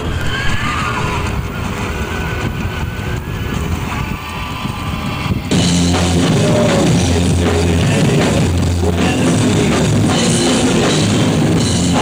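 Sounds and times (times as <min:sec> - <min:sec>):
low rumble: 0:00.0 - 0:10.3
distorted electric guitar feedback: 0:00.0 - 0:12.0
rock band with drum kit: 0:05.1 - 0:12.0.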